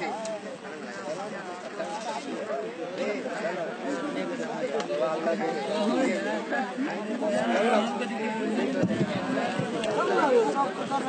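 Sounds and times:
chatter of several voices: 0:00.0 - 0:11.0.

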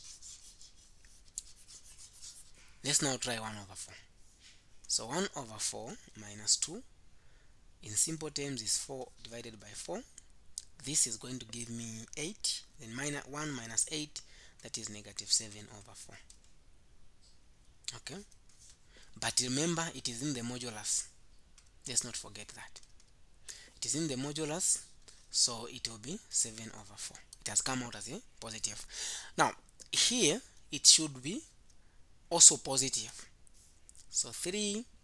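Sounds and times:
stylus scratching on tablet: 0:00.0 - 0:03.2
low room hiss: 0:00.0 - 0:35.0.

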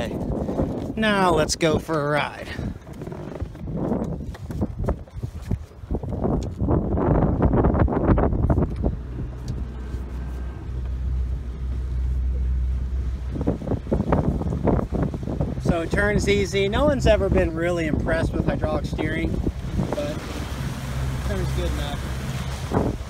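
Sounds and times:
boat engine running: 0:00.0 - 0:23.0
water rushing past a hull: 0:00.0 - 0:23.0
wind buffeting the microphone: 0:00.0 - 0:23.0.

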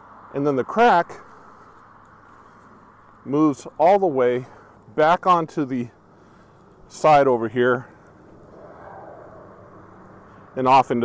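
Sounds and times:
vehicle passing on road: 0:00.0 - 0:11.0.

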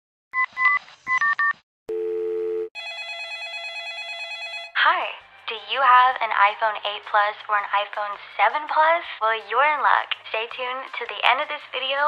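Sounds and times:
steady telephone tone: 0:01.9 - 0:04.8
trilling telephone ring: 0:02.5 - 0:04.8.

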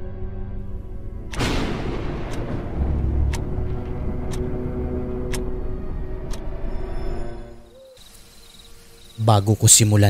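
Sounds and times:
low rumbling drone: 0:00.0 - 0:07.8
sharp tick: 0:01.3 - 0:04.6, 0:05.2 - 0:05.5.

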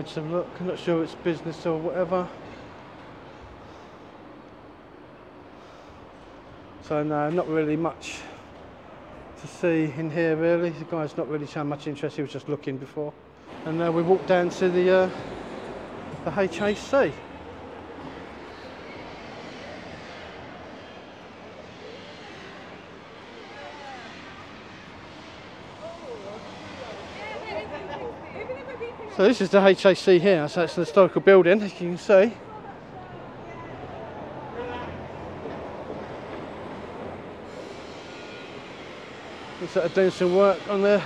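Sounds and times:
city street traffic: 0:00.0 - 0:41.0
road noise: 0:00.0 - 0:41.0.

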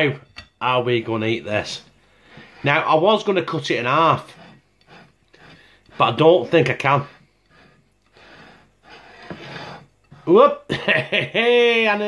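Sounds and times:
person breathing softly: 0:02.0 - 0:02.6, 0:04.2 - 0:06.1, 0:07.0 - 0:10.3.

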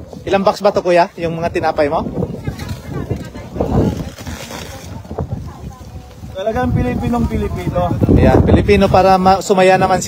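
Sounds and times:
wind rumbling on microphone: 0:00.0 - 0:10.0
faint voices of people: 0:01.2 - 0:10.0.

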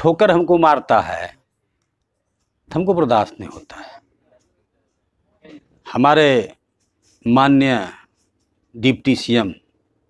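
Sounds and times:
man speaking: 0:00.0 - 0:01.5, 0:02.6 - 0:04.5, 0:05.3 - 0:09.8.

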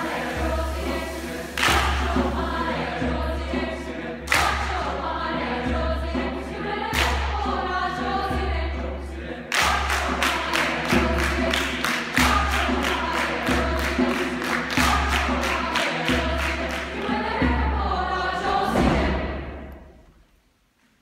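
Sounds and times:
mixed choir singing: 0:00.0 - 0:19.9
group hand claps: 0:01.4 - 0:02.4, 0:04.3 - 0:04.9, 0:07.0 - 0:07.3, 0:09.5 - 0:17.2.

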